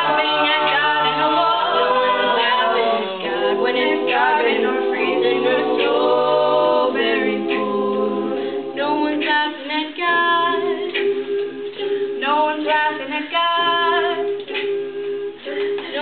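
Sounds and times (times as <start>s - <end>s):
a cappella group singing in harmony: 0.0s - 16.0s.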